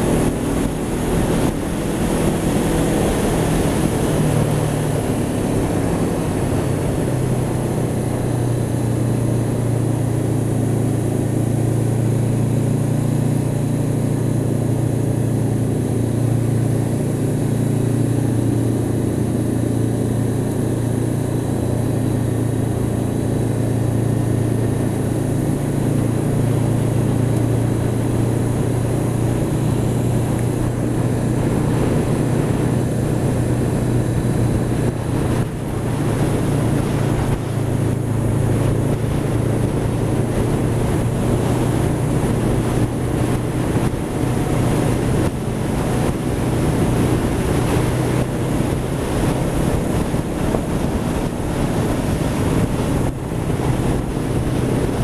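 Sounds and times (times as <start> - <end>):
motorcycle engine running: 0.0 - 55.0
wind and road noise: 0.0 - 55.0.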